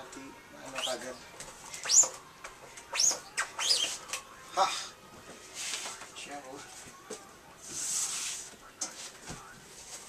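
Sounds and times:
bird chirping: 0:02.9 - 0:04.0.

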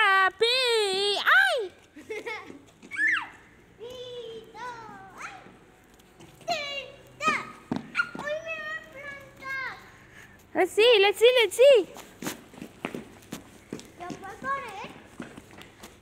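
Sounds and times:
children calling out: 0:02.8 - 0:05.7, 0:06.4 - 0:10.1.

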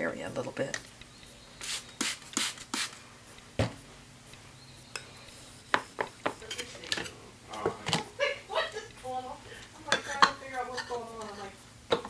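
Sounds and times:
spray bottle squirting water: 0:01.6 - 0:03.0.

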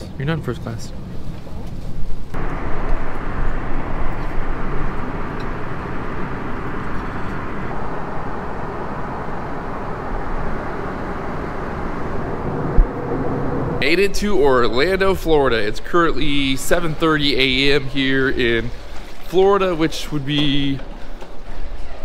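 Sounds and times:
airliner cabin jet engine rush: 0:02.4 - 0:15.8.

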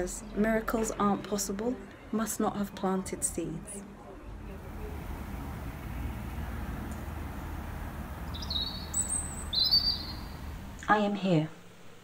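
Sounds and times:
steady low rumble: 0:04.4 - 0:10.8
short bird calls: 0:08.2 - 0:10.5.

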